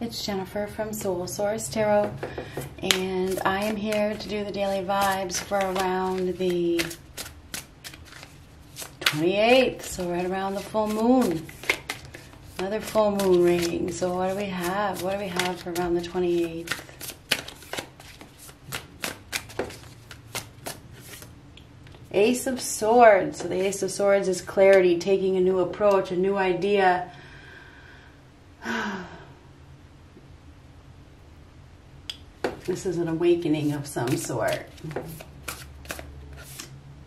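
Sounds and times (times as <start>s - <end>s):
cards being shuffled: 2.6s - 21.3s, 32.4s - 32.8s, 33.6s - 36.8s.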